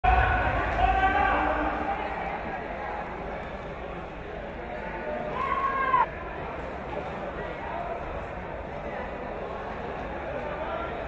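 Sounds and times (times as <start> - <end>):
voice echoing in a hall: 0.0 - 3.4.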